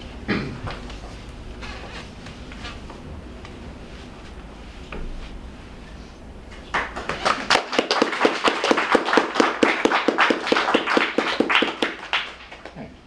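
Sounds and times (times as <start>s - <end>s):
audience applauding: 6.7s - 12.8s.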